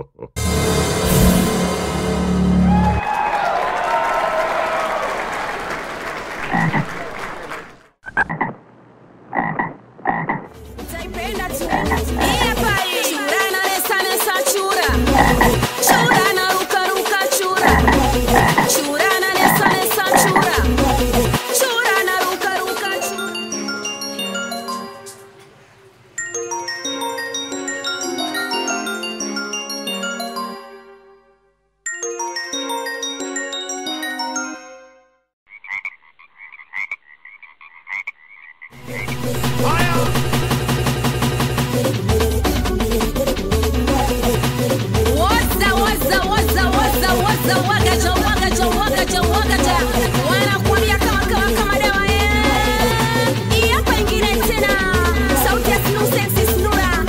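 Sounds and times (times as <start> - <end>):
frog croaking: 6.4 - 7.0, 8.0 - 8.6, 9.3 - 10.6, 11.6 - 12.8, 14.9 - 16.3, 17.6 - 20.6, 35.5 - 40.2
music with low bass: 10.6 - 12.8, 14.9 - 16.2, 17.7 - 18.7, 20.4 - 21.4, 38.8 - 50.2.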